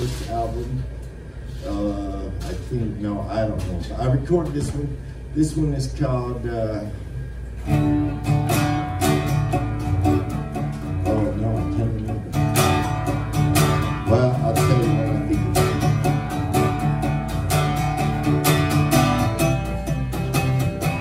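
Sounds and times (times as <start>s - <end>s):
acoustic guitar chords: 7.6s - 21.0s.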